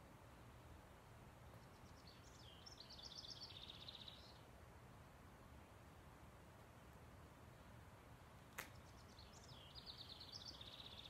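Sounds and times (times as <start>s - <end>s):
songbird chirping and trilling: 1.4s - 4.5s, 8.7s - 11.0s.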